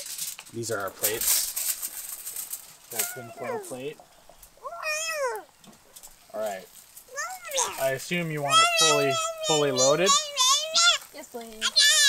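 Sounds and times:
baby squealing: 2.9s - 3.9s, 4.6s - 5.5s, 7.1s - 12.0s.

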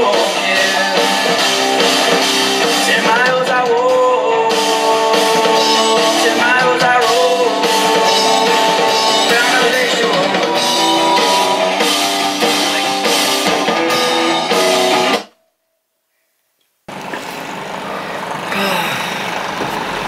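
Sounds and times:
rock song with singing: 0.0s - 15.2s
car cabin road noise: 16.9s - 20.0s.

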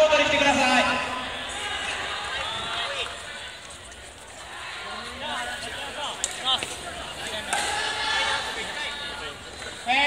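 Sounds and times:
echoing voices and chatter: 0.0s - 10.0s.

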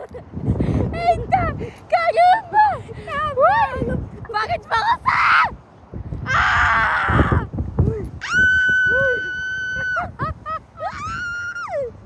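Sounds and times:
girls screaming: 6.3s - 7.5s, 8.2s - 12.0s.

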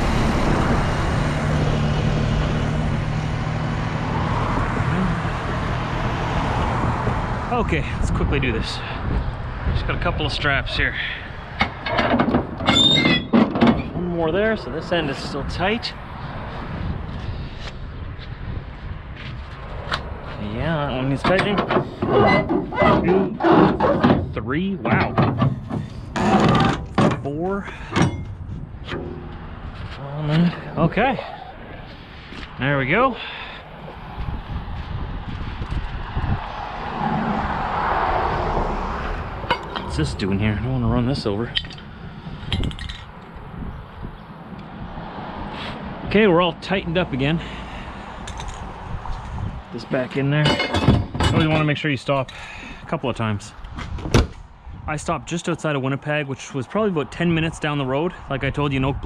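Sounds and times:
vehicle passing on road: 0.0s - 12.7s, 13.8s - 24.8s, 27.3s - 51.7s
metal winch clicks and knocks: 11.6s - 13.9s, 28.9s - 29.4s, 39.5s - 40.0s
heavy metal knocks: 11.6s - 14.0s, 21.2s - 29.9s, 50.4s - 51.6s
high winch squeal: 12.7s - 13.4s
steady low rumble: 24.2s - 37.7s, 39.0s - 45.0s.

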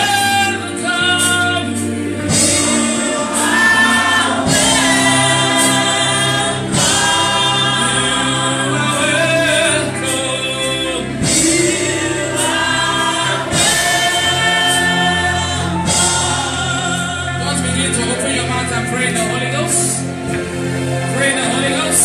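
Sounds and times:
woman singing worship song: 0.0s - 17.4s
low musical backing: 0.0s - 22.0s.

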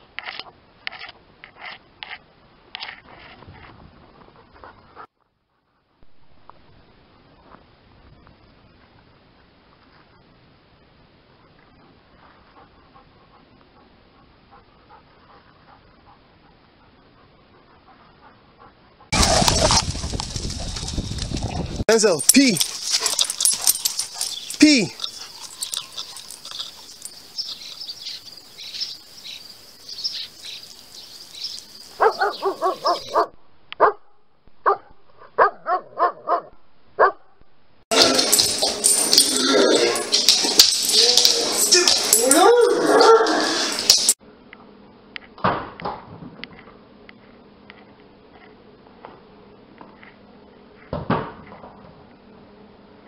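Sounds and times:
dog panting: 12.2s - 19.7s, 22.6s - 27.8s
dog whining and yipping: 22.6s - 27.8s, 38.0s - 44.0s.

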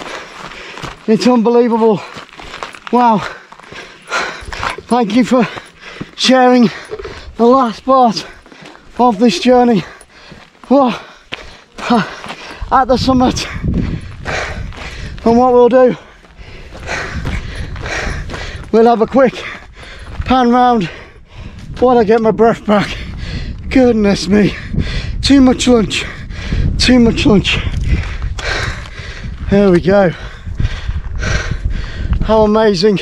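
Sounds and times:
man breathing hard: 0.0s - 1.0s, 2.0s - 7.4s, 8.2s - 21.8s, 22.9s - 23.7s, 24.5s - 25.3s, 25.9s - 26.8s, 27.4s - 32.3s
wind rumbling on microphone: 6.6s - 10.2s, 11.8s - 33.0s.

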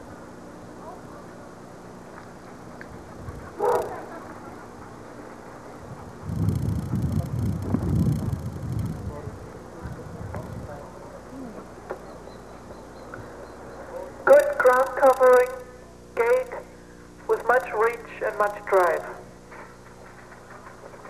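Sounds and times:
low rumbling noise: 0.0s - 17.4s
dog barking: 3.5s - 4.2s.

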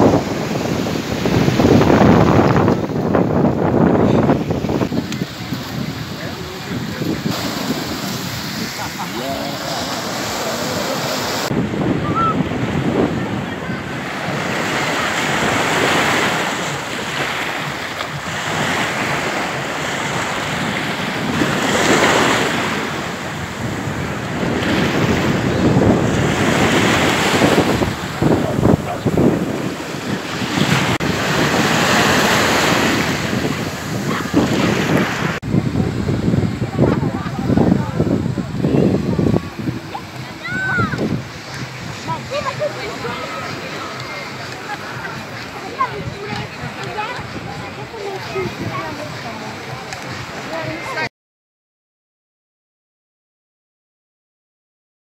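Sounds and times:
wind buffeting microphone: 0.0s - 50.4s
sea waves breaking on shore: 0.0s - 51.1s.

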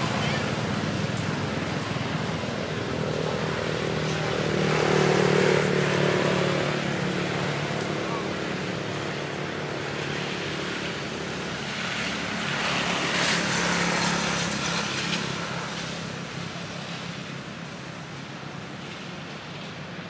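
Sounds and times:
vehicle engine humming: 0.0s - 19.0s.

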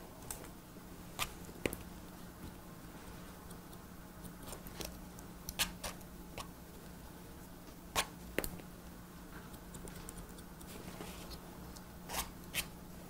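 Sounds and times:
faint steady hum: 0.0s - 13.0s
scissors snipping hair: 9.5s - 10.8s.

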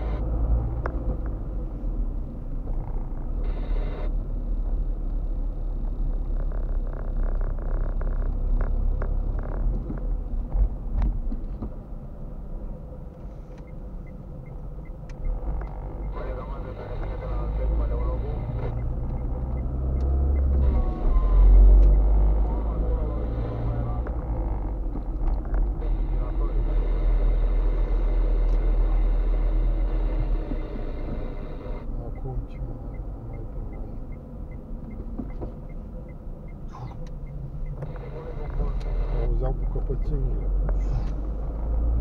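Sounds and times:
car engine and road rumble: 0.0s - 42.0s.

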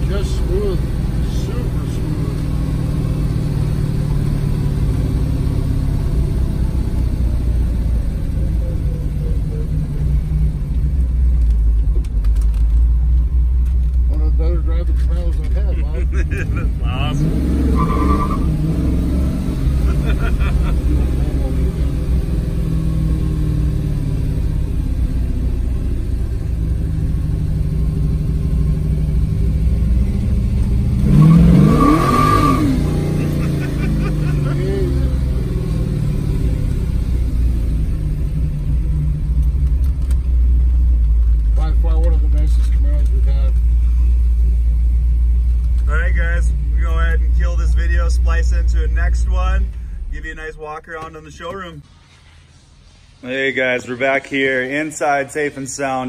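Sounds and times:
car engine running: 0.0s - 51.8s.

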